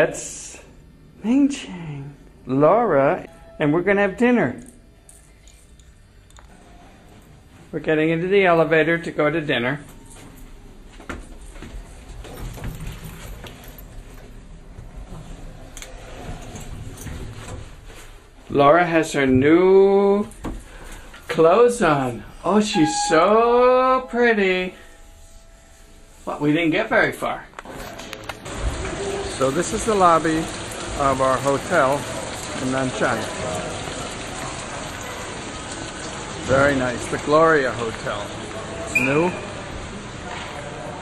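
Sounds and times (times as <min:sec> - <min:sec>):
elevator hum: 0:00.0 - 0:41.0
steady room tone hiss: 0:00.0 - 0:41.0.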